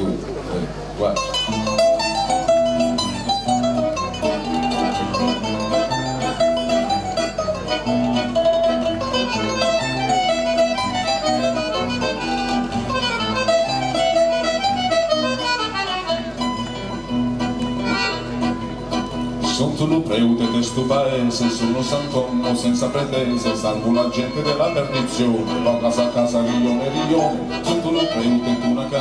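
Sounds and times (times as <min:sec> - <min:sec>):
accordion: 0:00.0 - 0:29.0
acoustic guitar: 0:00.0 - 0:29.0
mandolin: 0:00.0 - 0:29.0.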